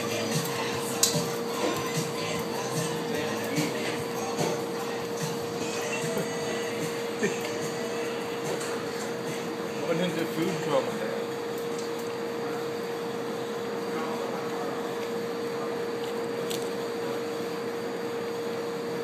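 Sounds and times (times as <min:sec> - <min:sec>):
background voices: 0:00.0 - 0:09.9
background music: 0:00.0 - 0:10.7
steady hum: 0:00.0 - 0:19.0.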